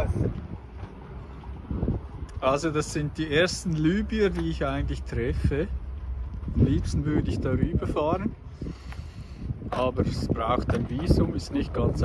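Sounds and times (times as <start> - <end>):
wind buffeting microphone: 0.0 - 12.0
men's voices: 2.3 - 5.8, 6.4 - 12.0.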